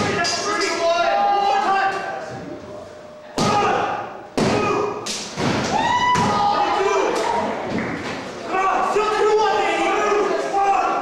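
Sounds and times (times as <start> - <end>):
long held shout: 5.7 - 7.2.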